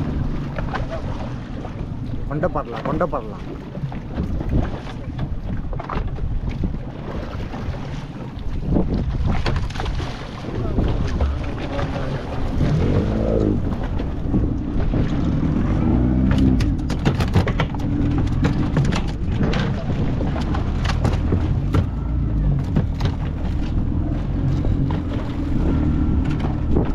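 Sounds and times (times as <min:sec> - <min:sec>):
wind buffeting microphone: 0:00.0 - 0:26.9
fish flapping on boat deck: 0:08.8 - 0:13.1, 0:16.2 - 0:26.9.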